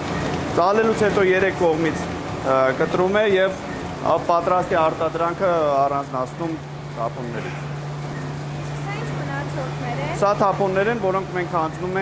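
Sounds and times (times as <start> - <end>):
machinery low hum: 0.0 - 12.0.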